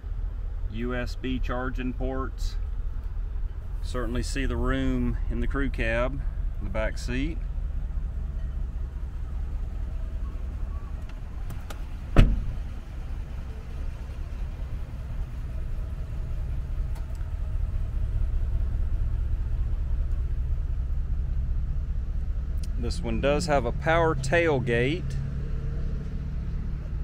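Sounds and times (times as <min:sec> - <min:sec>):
steady low rumble: 0:00.0 - 0:27.0
car door shutting with thud: 0:11.5 - 0:12.6.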